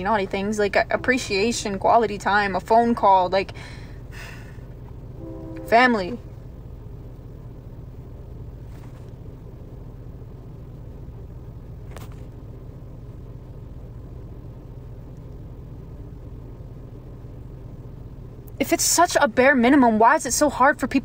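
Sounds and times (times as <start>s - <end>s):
car rumbling from inside cabin: 0.0s - 21.0s.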